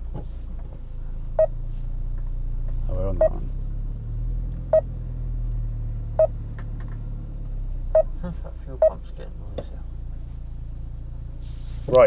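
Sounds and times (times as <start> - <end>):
low engine hum: 0.0 - 12.0.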